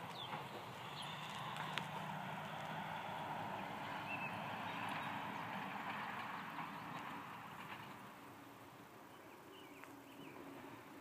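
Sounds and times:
horse hooves on dirt: 0.0 - 8.4.

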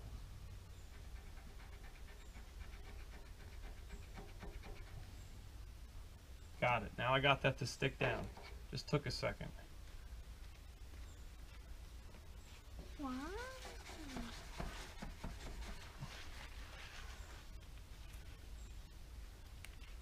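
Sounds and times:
squeegee swishing over tape: 13.4 - 18.3.

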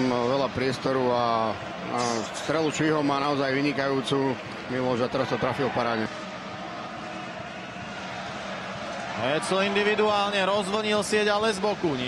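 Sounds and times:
ice hockey arena crowd hum: 0.0 - 12.0.

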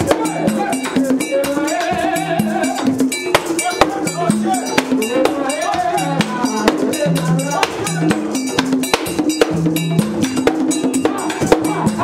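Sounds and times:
people singing: 0.0 - 8.5, 10.4 - 12.0
drums: 0.0 - 12.0
metal bell struck rapidly: 0.0 - 12.0.

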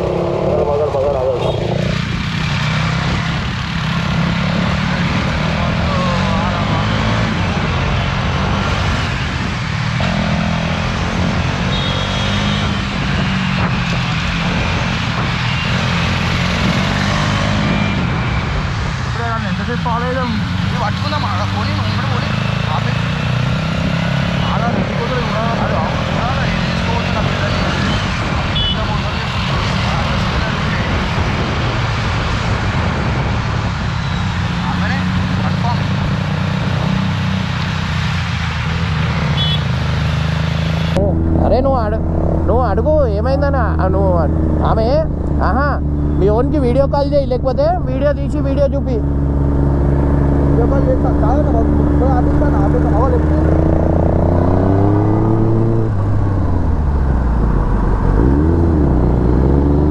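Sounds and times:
vehicles passing: 0.0 - 59.9
wind on microphone: 30.0 - 34.5
motorcycle engine rumble: 40.8 - 59.9.

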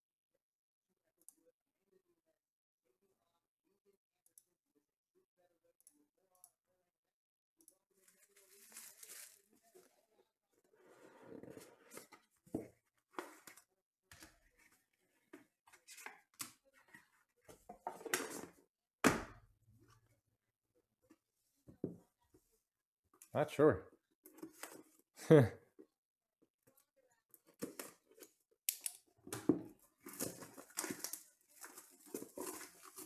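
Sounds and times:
packaging tearing and rustling: 8.1 - 9.5, 30.0 - 33.0.

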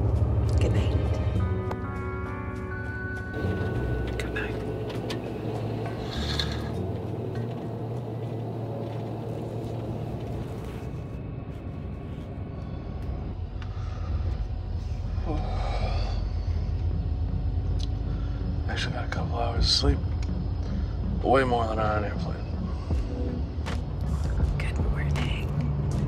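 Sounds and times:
bus rumbling in motion: 0.0 - 1.8, 3.3 - 26.0.

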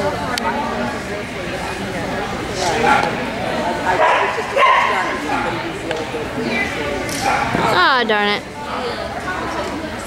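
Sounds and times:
people chattering: 0.0 - 10.0
dog barking: 4.0 - 5.1.

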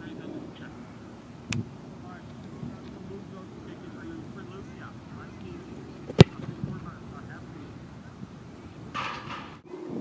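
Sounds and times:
foot kicking football: 6.0 - 6.7.

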